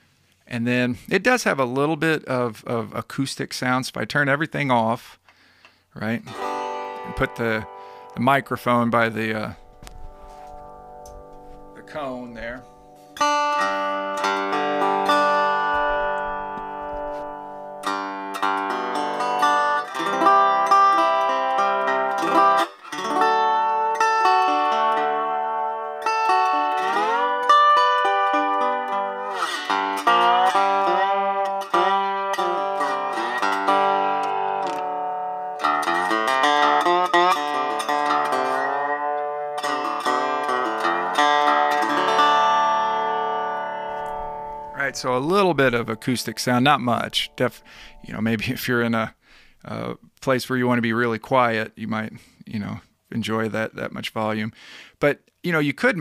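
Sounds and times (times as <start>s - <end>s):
man talking: 0.5s - 5.2s, 6.0s - 6.4s, 7.0s - 9.6s, 11.8s - 12.7s, 44.7s - 56.0s
acoustic slide guitar notes: 6.1s - 48.8s.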